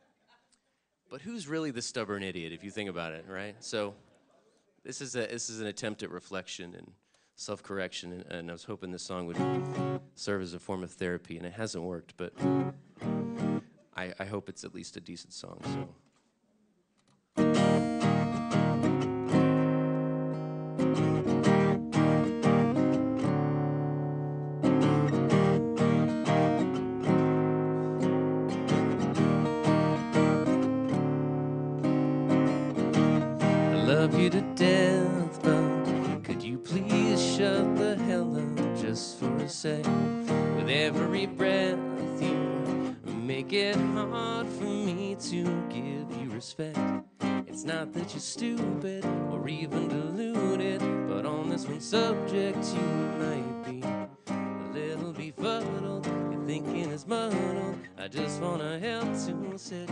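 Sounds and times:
acoustic guitar strumming: 9.3s - 10.1s, 12.3s - 13.7s, 17.4s - 59.9s.

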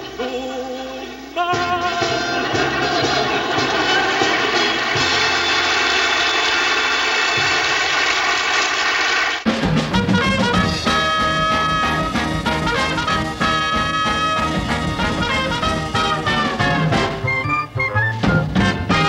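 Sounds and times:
swing tune with brass and drums: 0.0s - 8.1s, 9.4s - 19.0s
brass band chord: 1.5s - 7.5s, 9.5s - 19.0s.

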